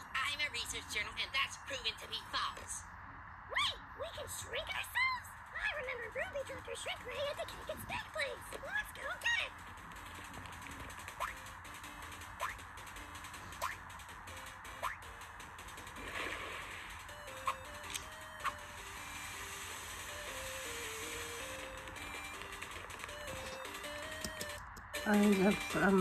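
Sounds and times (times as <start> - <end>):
soft cartoon music: 3.6 - 26.0
clicks: 21.8 - 25.0.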